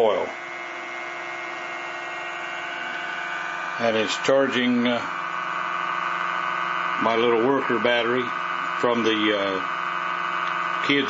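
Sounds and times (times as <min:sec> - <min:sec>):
pulse motor humming: 0:00.0 - 0:11.0.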